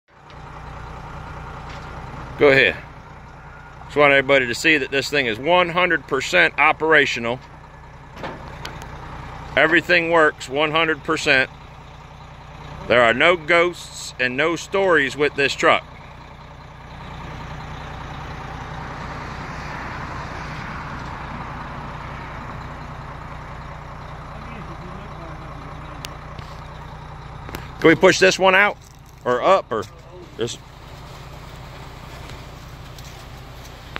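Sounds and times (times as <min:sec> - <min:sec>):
truck engine idling: 0:00.1 - 0:33.9.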